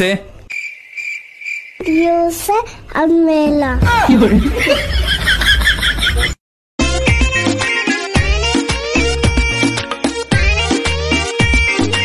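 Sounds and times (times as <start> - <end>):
cricket chirp sound effect: 0.5 - 2.2.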